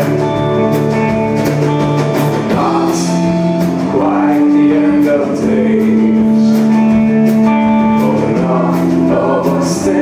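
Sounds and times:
drum kit beat: 0.0s - 10.0s
electric guitars playing chords: 0.0s - 10.0s.

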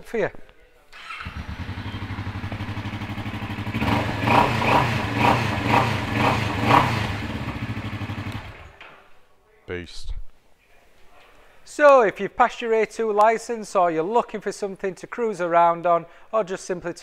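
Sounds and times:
motorcycle engine idling and revving: 1.1s - 8.8s.

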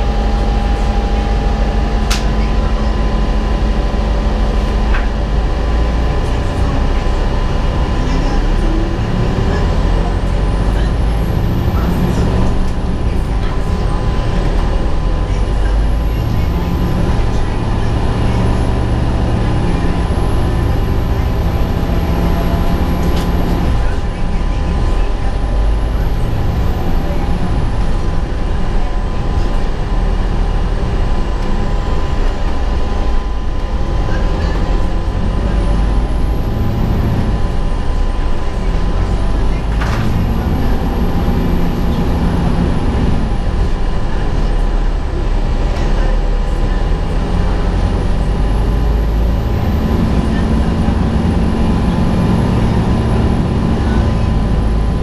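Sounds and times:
bus diesel engine rumble: 0.0s - 55.0s
steady humming tones: 0.0s - 55.0s.

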